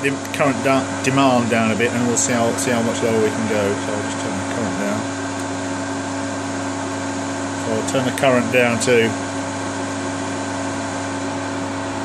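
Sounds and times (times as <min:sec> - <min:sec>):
cooling fans whirring: 0:00.0 - 0:12.0
steady hum tone: 0:00.0 - 0:12.0.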